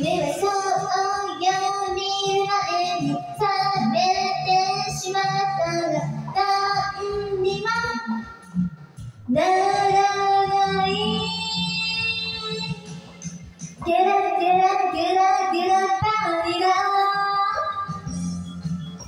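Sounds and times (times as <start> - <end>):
woman singing karaoke: 0.0 - 8.5, 9.3 - 13.1, 13.8 - 18.1
karaoke backing track: 0.0 - 19.0.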